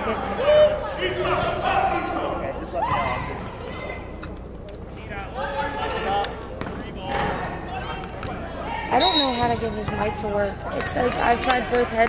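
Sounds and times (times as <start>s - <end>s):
referee's whistle: 8.9s - 9.6s.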